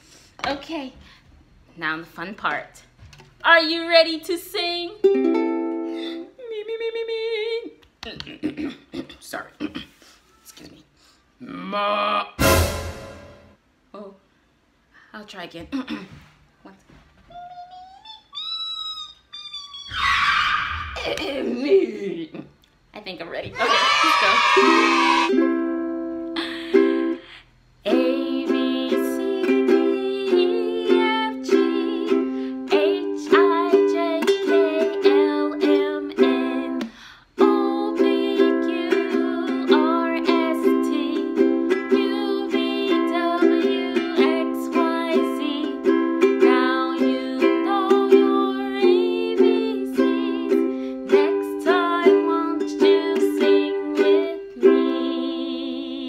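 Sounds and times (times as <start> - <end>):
ukulele strumming chords: 5.0 - 6.0, 24.6 - 27.2, 27.9 - 55.8
woman singing: 27.8 - 56.0.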